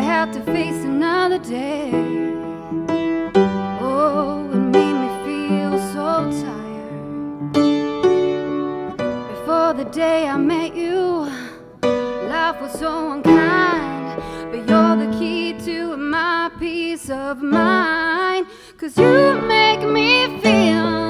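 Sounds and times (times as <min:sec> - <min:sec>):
woman singing with vibrato: 0:00.0 - 0:02.9, 0:03.8 - 0:07.4, 0:09.3 - 0:21.0
keyboard chords: 0:00.0 - 0:15.8.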